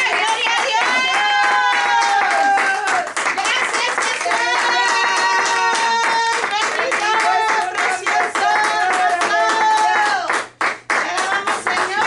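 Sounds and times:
hands clapping rhythmically: 0.0s - 12.0s.

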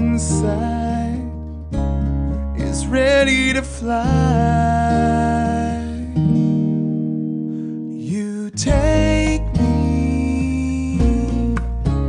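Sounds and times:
acoustic guitar chord strummed: 0.0s - 12.0s.

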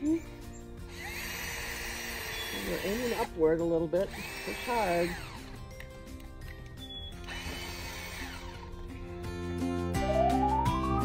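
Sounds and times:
background music: 0.0s - 11.0s
cordless drill motor whine: 0.5s - 3.4s, 4.0s - 5.9s, 6.8s - 9.0s.

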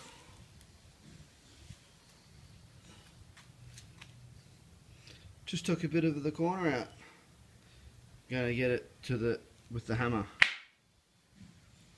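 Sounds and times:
low background hum: 0.0s - 11.9s.

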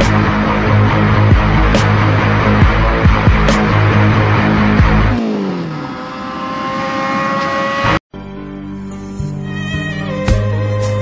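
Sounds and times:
music with heavy beat: 0.0s - 5.1s
small motorcycle engine: 4.5s - 8.0s.

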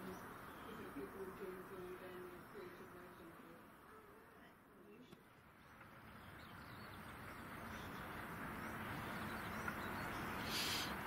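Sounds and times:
faint bird chirps: 0.0s - 11.0s
vehicle rumble on railway: 0.0s - 11.0s.

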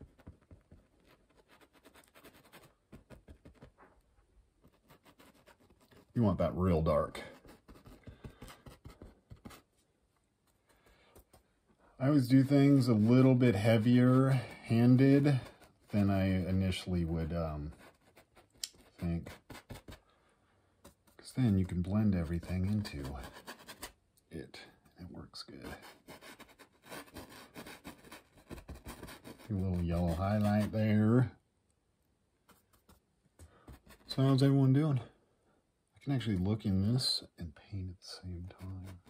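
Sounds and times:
paintbrush scratching on canvas: 0.0s - 4.0s, 4.6s - 9.8s, 12.3s - 20.0s, 20.9s - 24.0s, 25.5s - 31.0s, 33.6s - 34.5s, 38.5s - 39.0s.

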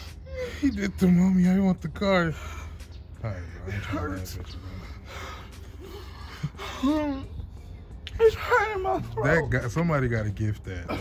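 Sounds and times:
man gasping and breathing hard: 4.8s - 7.7s.

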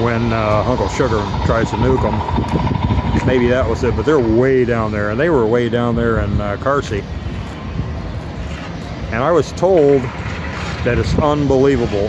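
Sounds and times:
street traffic rumble: 0.0s - 12.0s
wind: 0.0s - 12.0s.

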